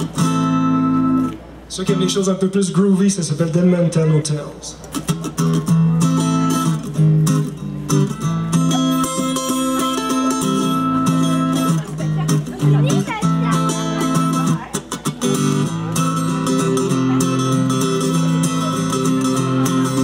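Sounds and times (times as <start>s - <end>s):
amplified acoustic guitar strumming: 0.0s - 20.0s.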